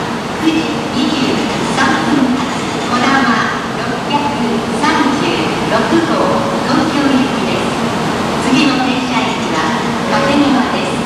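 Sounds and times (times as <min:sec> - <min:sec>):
train standing at platform: 0:00.0 - 0:11.0
person speaking: 0:09.9 - 0:11.0.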